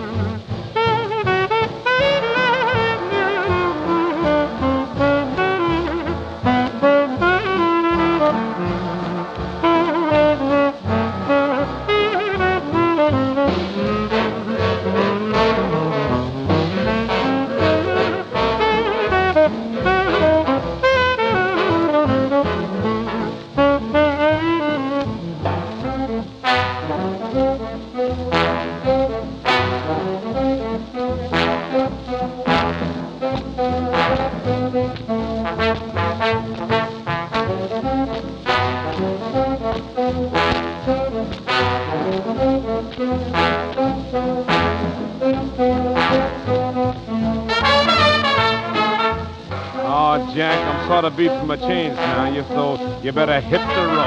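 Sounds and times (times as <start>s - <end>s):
swing big band brass: 0.0s - 54.0s.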